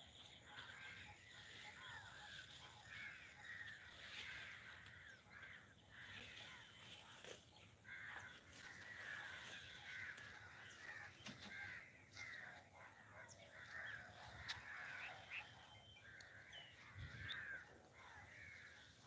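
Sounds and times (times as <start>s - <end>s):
chorus of birds: 0.0s - 19.0s.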